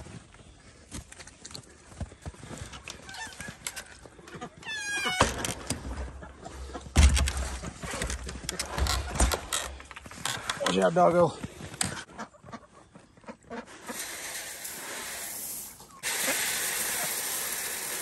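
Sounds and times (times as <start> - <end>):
heavy thumps: 5.2 - 10.0.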